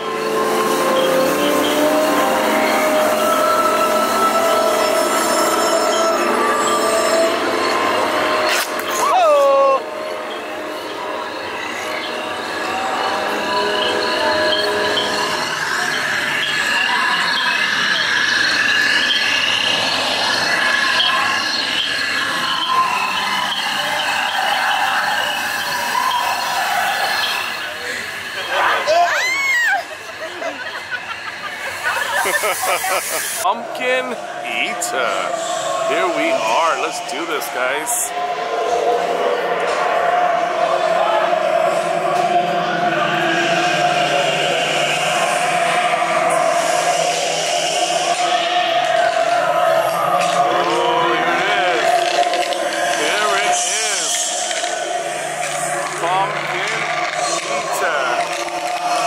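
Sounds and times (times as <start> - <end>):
eerie gliding voices: 0.0 - 59.0
people chattering: 0.0 - 59.0.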